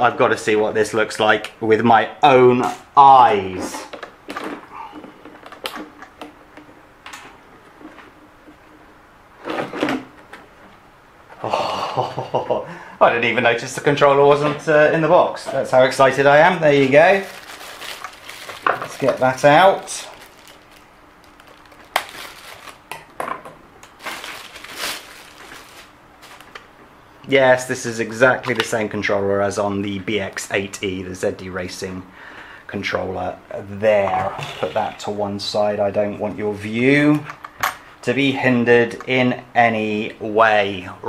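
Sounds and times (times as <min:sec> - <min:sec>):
plastic wrapping crinkling: 0:16.5 - 0:23.1, 0:23.8 - 0:26.7
scuffing rustle: 0:24.0 - 0:26.5.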